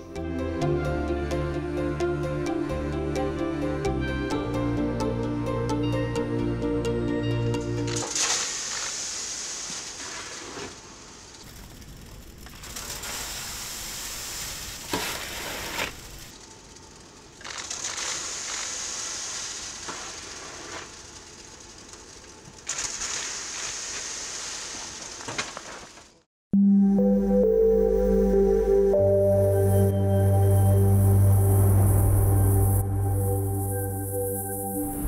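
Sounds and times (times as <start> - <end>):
wet concrete rushing down chute: 7.9 - 11.5, 17.4 - 26.0.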